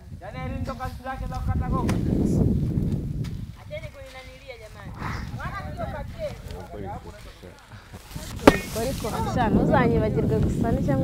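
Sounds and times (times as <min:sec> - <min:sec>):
voices talking: 0:03.6 - 0:11.0.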